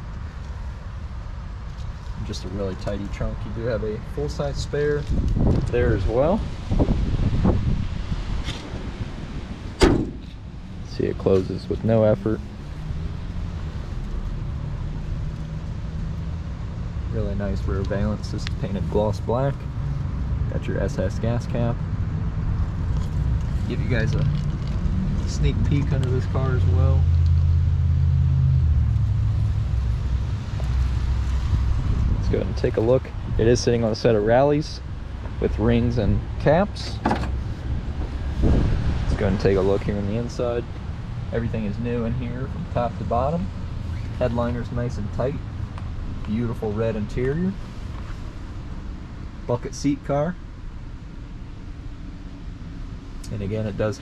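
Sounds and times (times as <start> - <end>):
steady low rumble: 0.0 - 54.0
car door unlatching and opening: 9.8 - 10.4, 36.9 - 37.5.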